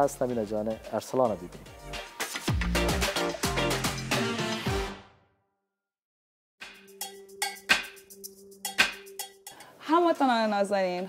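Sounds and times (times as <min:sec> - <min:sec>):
sharp percussive strikes: 0:06.6 - 0:09.7.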